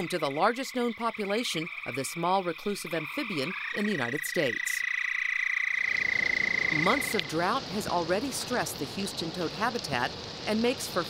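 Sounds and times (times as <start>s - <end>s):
toad trilling: 0.0s - 7.5s
steady hiss: 5.8s - 11.0s.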